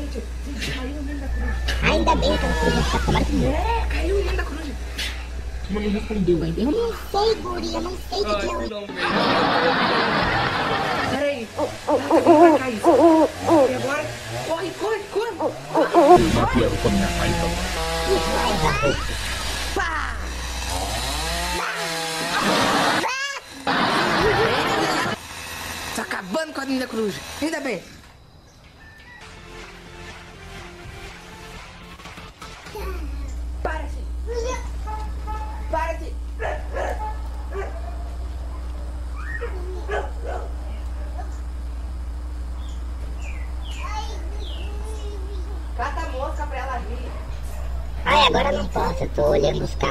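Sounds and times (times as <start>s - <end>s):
chainsaw cutting branches: 16.2s - 28.2s
dog barking and yipping: 34.8s - 35.8s, 36.4s - 40.6s.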